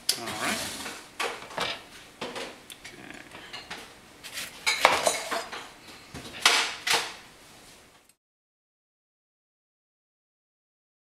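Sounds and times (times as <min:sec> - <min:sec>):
kitchen utensils clinking: 0:03.5 - 0:05.8.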